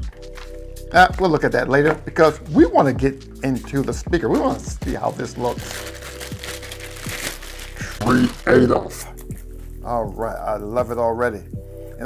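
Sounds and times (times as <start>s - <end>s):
background music: 0.0s - 12.0s
plastic wrapping crinkling: 3.6s - 9.8s.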